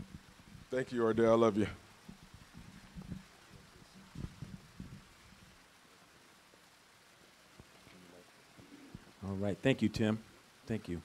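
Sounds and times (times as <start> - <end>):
faint low thumps: 1.6 - 5.5.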